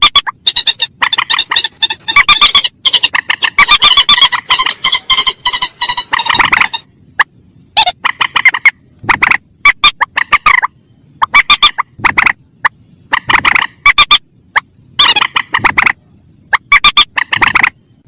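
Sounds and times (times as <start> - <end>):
harsh bird calls: 0.0 - 18.0.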